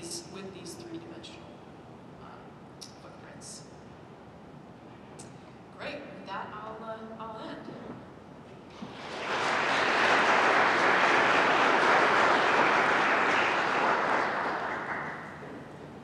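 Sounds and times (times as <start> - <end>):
audience applauding: 8.7 - 15.8.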